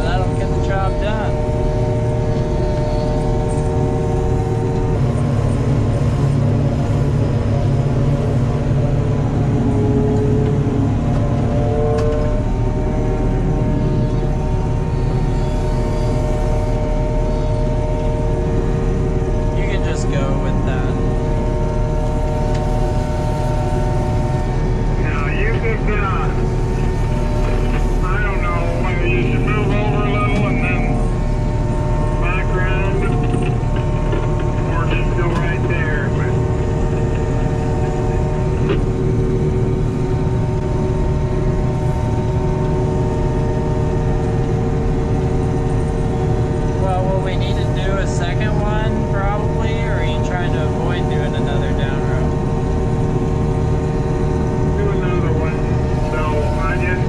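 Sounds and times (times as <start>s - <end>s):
engine drone: 0.0s - 57.0s
machine whining tones: 0.0s - 57.0s
person speaking: 27.4s - 31.2s.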